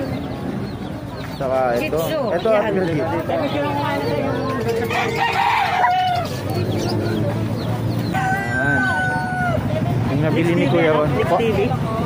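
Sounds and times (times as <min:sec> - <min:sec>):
rooster crowing: 0:04.9 - 0:06.4, 0:08.1 - 0:09.7.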